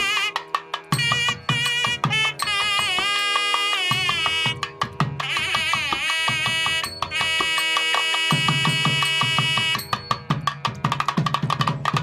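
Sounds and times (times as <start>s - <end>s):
double-reed pipe melody: 0.0s - 10.1s
drum strokes: 0.0s - 12.0s.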